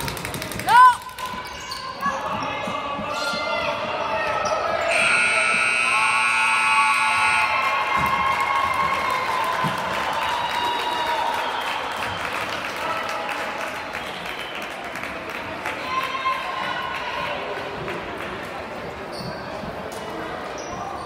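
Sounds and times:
crowd voices and shouting: 0.0s - 21.0s
scoreboard horn blast: 4.9s - 7.7s.

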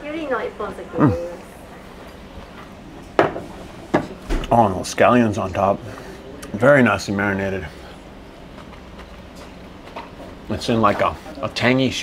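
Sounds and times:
plate knocking on wooden table: 3.2s - 4.1s.

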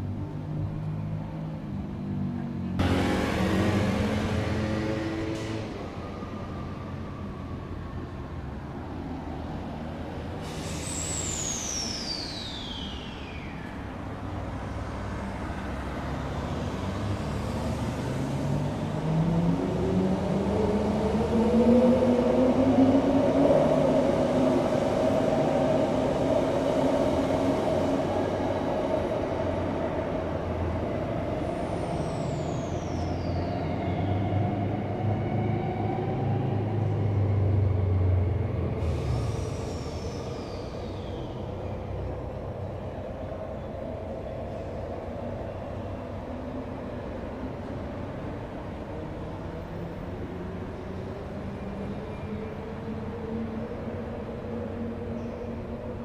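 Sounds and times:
wheels rumbling on track: 0.0s - 56.0s.

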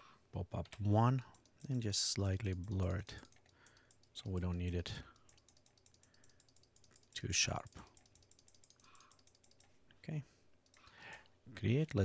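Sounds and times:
faint keyboard clicks: 0.6s - 9.8s, 10.6s - 11.3s.

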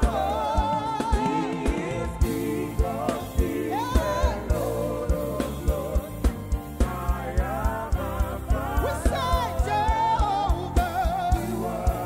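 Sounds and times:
keyboard accompaniment: 0.0s - 12.0s
quick drum beat: 0.0s - 12.0s.

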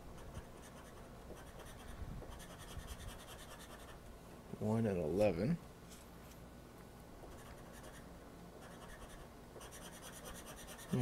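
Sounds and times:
scraper scratching lottery ticket: 0.2s - 4.0s, 7.3s - 8.0s, 8.6s - 11.0s.

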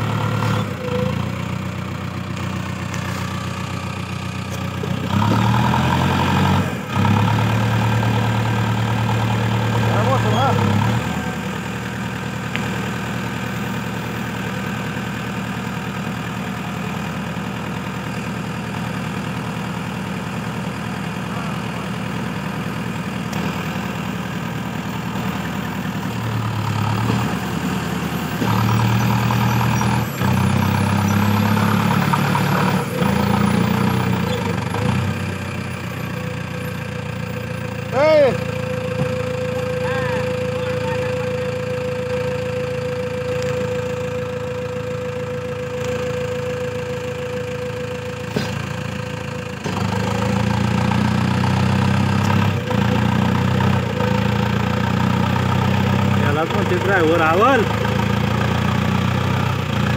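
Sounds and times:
tractor diesel engine working hard: 0.0s - 59.9s.

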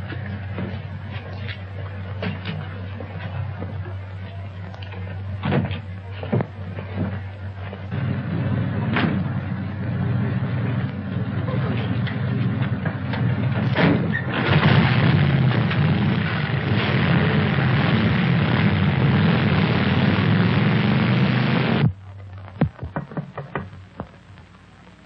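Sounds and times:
motorcycle and car engines rumbling: 5.3s - 21.9s.

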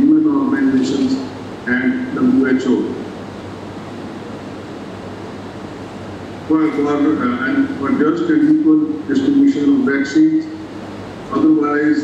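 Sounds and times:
faint low hum: 0.0s - 12.0s
steady background hiss: 0.0s - 12.0s.

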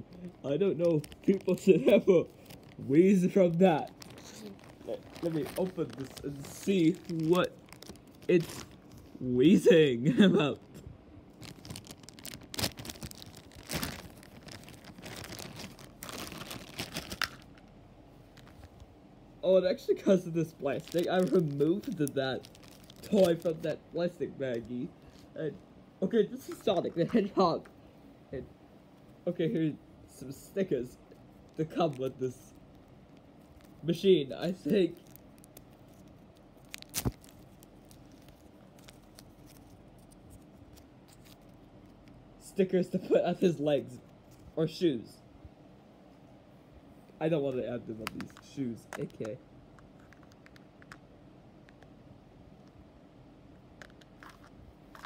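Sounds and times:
plastic bag crinkling and tearing: 0.1s - 9.0s, 10.6s - 17.7s, 18.3s - 18.8s, 20.1s - 23.8s, 31.1s - 42.2s, 53.8s - 55.0s
paper rustling: 0.9s - 9.1s.

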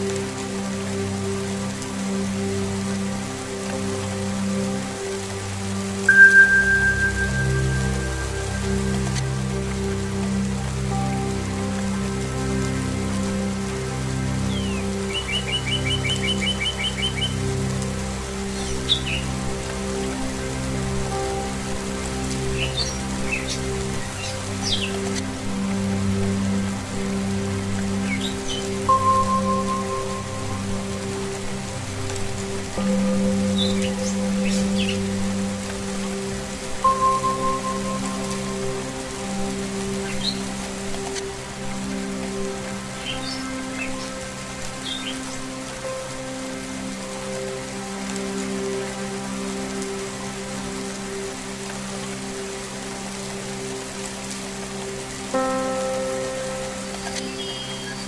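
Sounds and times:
singing bowls and strings: 0.0s - 58.0s
steady rain falling: 0.0s - 58.0s.

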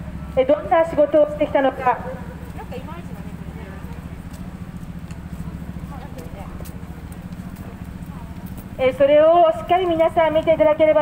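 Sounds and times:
faint distant voices: 0.0s - 11.0s
woman speaking through loudspeaker: 0.3s - 4.0s, 5.8s - 6.7s, 8.0s - 11.0s.

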